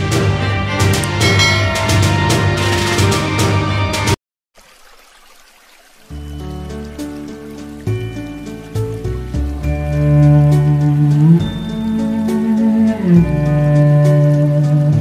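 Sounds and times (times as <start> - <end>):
intro music: 0.0 - 4.2
slow instrumental music: 0.0 - 4.2, 6.0 - 15.0
faint rain with drips: 4.6 - 15.0.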